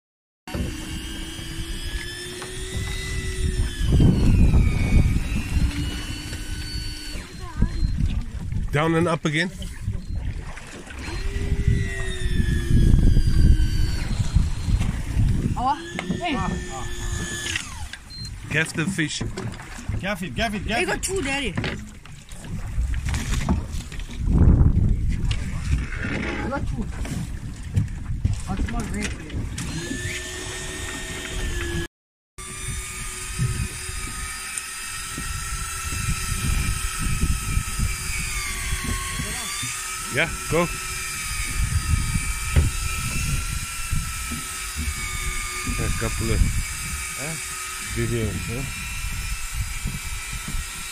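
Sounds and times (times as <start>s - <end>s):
electric fishing reel motor whine: 0.5s - 8.2s, 9.6s - 18.4s, 29.6s - 50.9s
wind noise on microphone: 0.5s - 18.5s, 22.3s - 50.9s.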